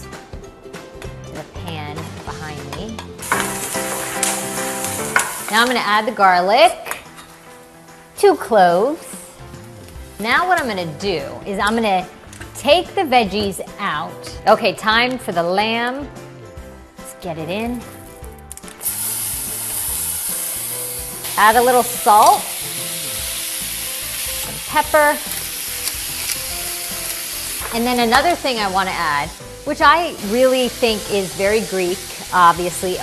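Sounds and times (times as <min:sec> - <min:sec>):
background music with held tones: 0:00.0 - 0:33.0
vegetables sizzling in oil: 0:03.2 - 0:06.0, 0:18.8 - 0:33.0.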